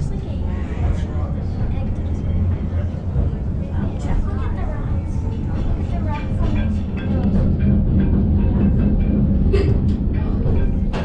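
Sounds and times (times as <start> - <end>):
passengers chatting: 0.0 - 11.0
railway car rumbling on track: 0.0 - 11.0.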